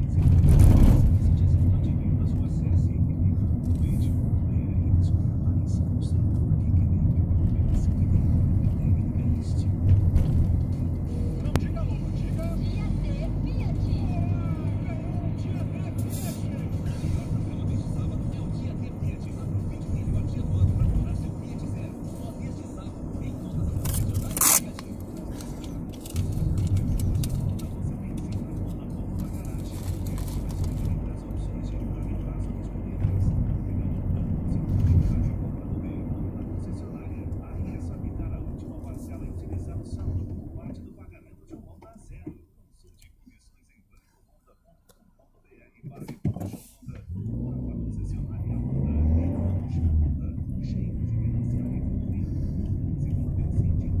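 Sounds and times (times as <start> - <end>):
car engine and road noise: 0.0 - 54.0
faint radio voice or music: 0.0 - 54.0.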